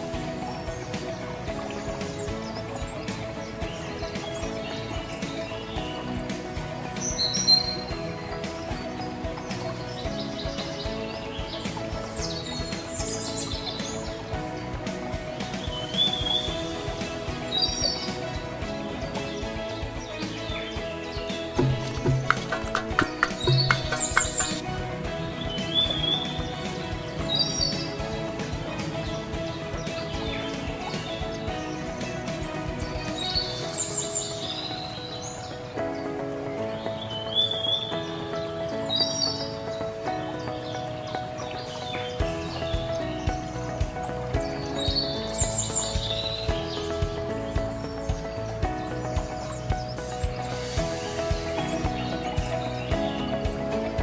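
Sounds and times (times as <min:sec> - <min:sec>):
high bird-like chirps: 0:00.0 - 0:36.0, 0:36.8 - 0:54.0
background music: 0:00.0 - 0:54.0
low thumping beat: 0:21.5 - 0:27.3
sharp clicks or knocks: 0:21.6 - 0:24.6.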